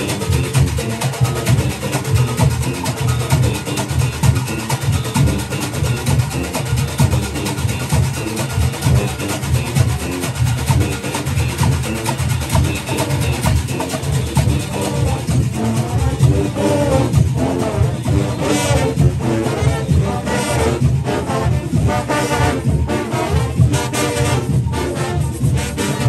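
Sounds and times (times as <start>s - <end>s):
brass horns: 0.0s - 26.0s
drums beating fast rhythm: 0.0s - 26.0s.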